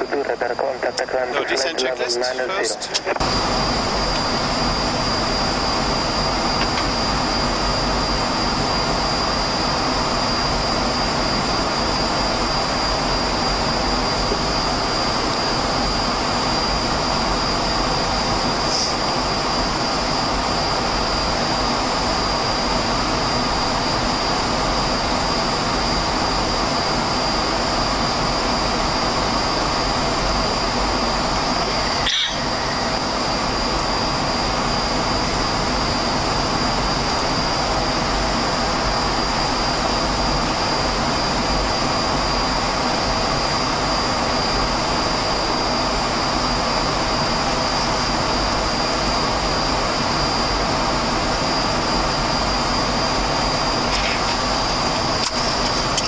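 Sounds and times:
airflow and jet engine rush: 0.0 - 56.0
thin high whine: 0.0 - 56.0
short chirp: 32.0 - 32.6.

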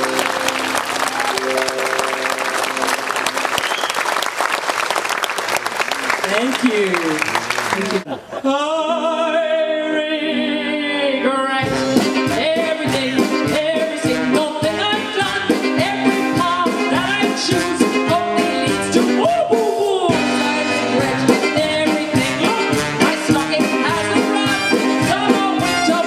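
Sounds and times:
woman singing into a microphone: 10.8 - 26.0
live band playing a quick beat: 11.6 - 26.0.

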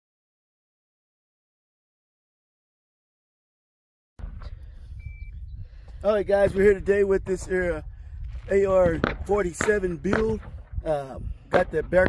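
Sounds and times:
wind rumbling on microphone: 4.2 - 12.0.

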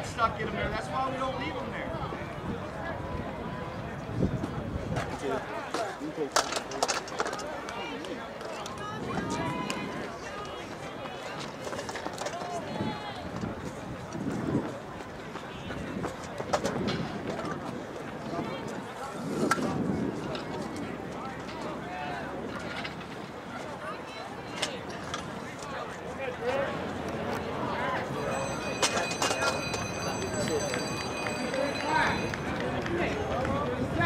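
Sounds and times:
people talking indistinctly: 0.0 - 34.0.

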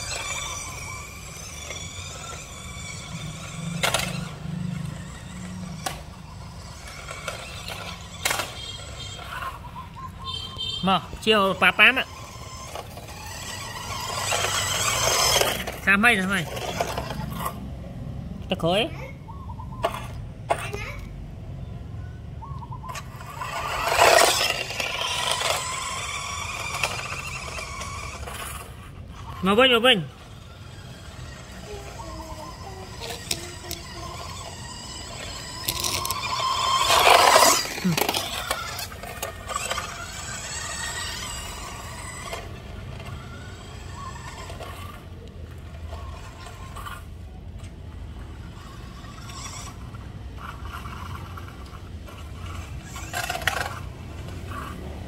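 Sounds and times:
toy car electric motor whining: 0.0 - 21.1, 22.4 - 55.0
wheels scraping on concrete: 0.0 - 55.0.

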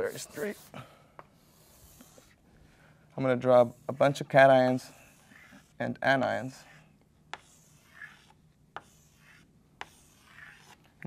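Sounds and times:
chalk scratching on blackboard: 0.0 - 0.8, 1.4 - 2.4, 3.4 - 11.0
chalk tapping on board: 6.7 - 10.8.

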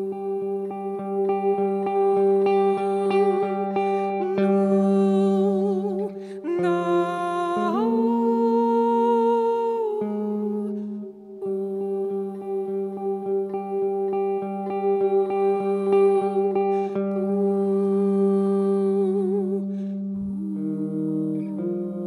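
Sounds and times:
slow ambient music: 0.0 - 22.0
soft plucked guitar notes: 0.0 - 22.0.

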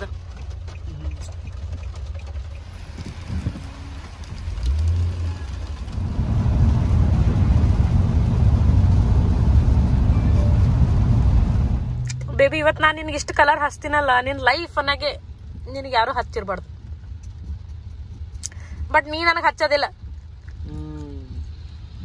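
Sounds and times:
car running on road: 0.0 - 22.0.

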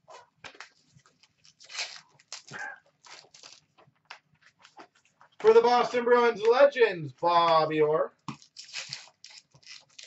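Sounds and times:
foil packs tearing and crinkling: 0.6 - 3.8, 8.4 - 10.0.

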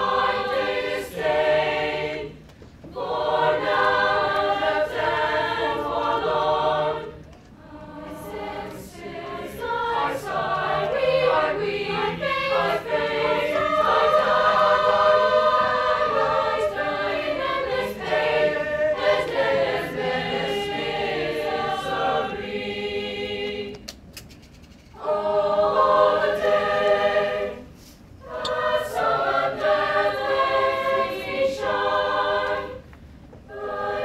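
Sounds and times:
mixed choir singing: 0.0 - 23.9, 25.0 - 32.9, 33.5 - 34.0.

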